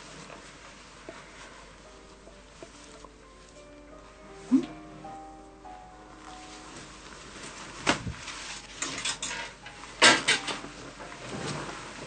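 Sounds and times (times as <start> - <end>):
clothes fabric swishes: 6.4 - 8.8, 11.2 - 12.0.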